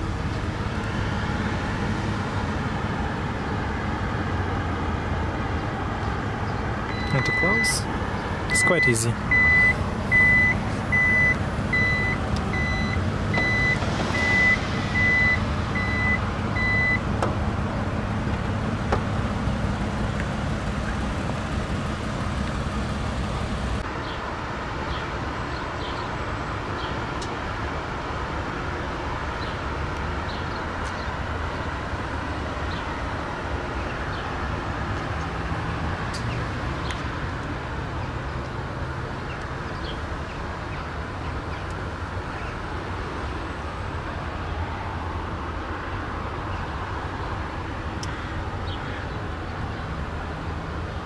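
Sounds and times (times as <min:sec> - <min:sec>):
tailgate warning buzzer beeping: 0:08.5 - 0:17.0.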